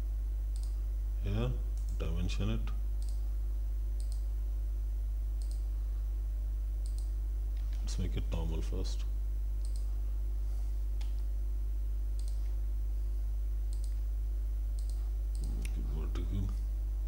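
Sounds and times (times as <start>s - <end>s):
low electrical hum: 0.0s - 17.0s
computer mouse clicks: 0.6s - 0.8s, 3.0s - 3.2s, 4.0s - 4.2s, 5.4s - 5.6s, 6.8s - 7.8s, 9.6s - 9.9s, 12.2s - 12.4s, 13.7s - 14.0s, 14.8s - 15.8s.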